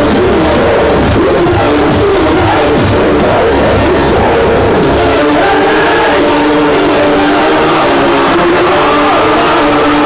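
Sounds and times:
industrial electronic music: 0.0 - 10.0.

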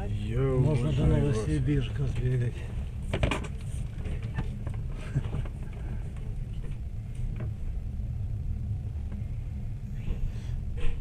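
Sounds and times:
low rumble in train carriage: 0.0 - 11.0.

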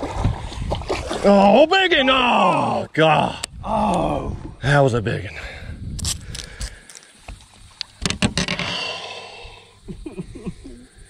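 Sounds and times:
fishing rod and reel clattering: 8.0 - 9.0.

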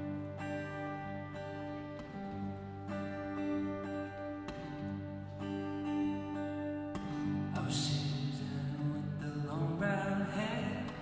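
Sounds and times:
acoustic guitar picked chords: 0.0 - 11.0.

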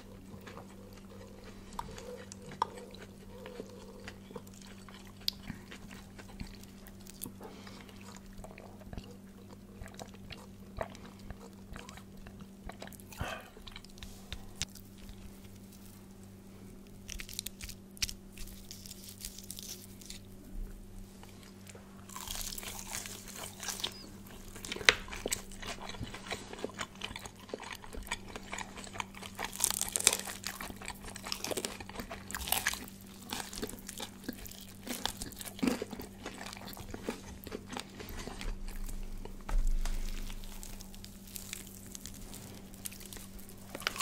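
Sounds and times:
chewing: 0.0 - 16.0, 21.2 - 44.0
crunching fried chicken: 0.0 - 20.4, 21.2 - 44.0.

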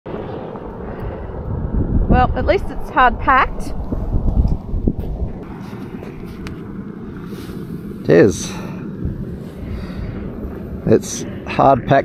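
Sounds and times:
wind on microphone: 0.1 - 12.0.

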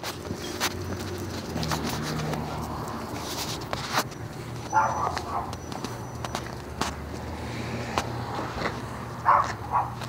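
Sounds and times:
footsteps on concrete floor: 0.0 - 10.0.

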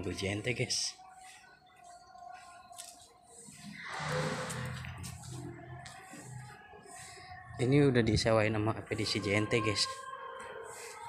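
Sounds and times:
rush of noise: 3.8 - 4.9.

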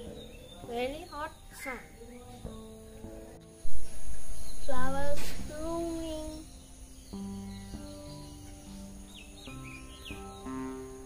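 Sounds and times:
background music sustained notes: 0.0 - 11.0
bird chirping: 0.0 - 11.0.

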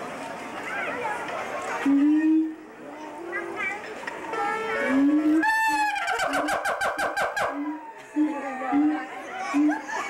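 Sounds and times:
monkey calling: 4.9 - 10.0.

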